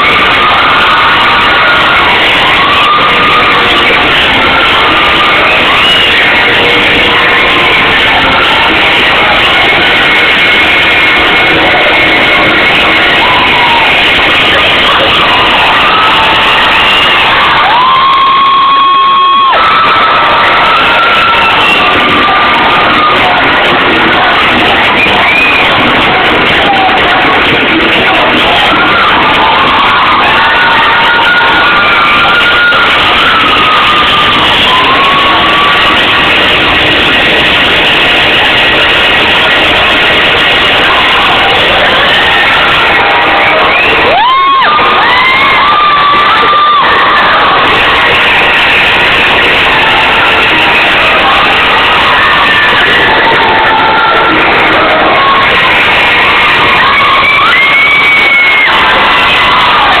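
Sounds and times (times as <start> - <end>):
crowd cheering and shouting: 0.0 - 60.0
loud held shout: 0.0 - 60.0.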